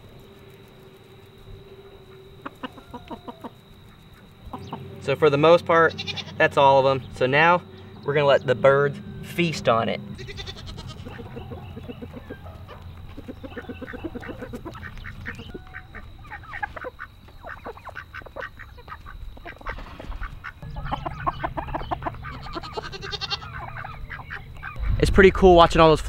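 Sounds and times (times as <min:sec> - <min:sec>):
poultry clucking and yelping: 0:02.0 - 0:06.5, 0:10.1 - 0:25.0.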